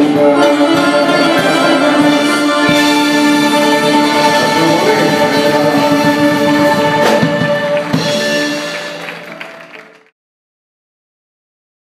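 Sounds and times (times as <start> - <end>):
live band holding a chord: 0.0 - 10.1.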